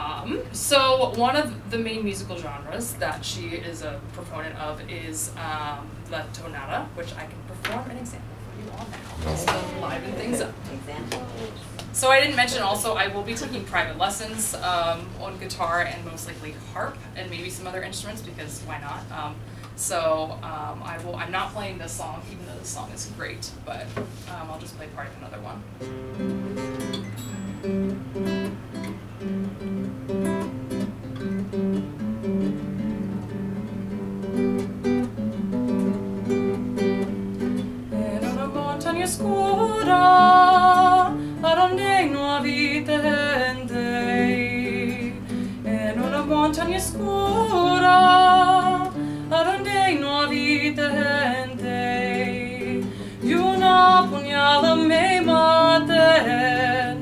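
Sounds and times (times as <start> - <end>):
nylon-string classical guitar: 8.7 - 12.8, 25.0 - 57.0
woman singing: 37.9 - 57.0.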